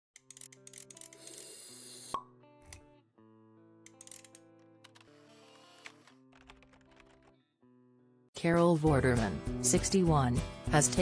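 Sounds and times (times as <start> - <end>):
quick clicks: 3.9 - 5.1.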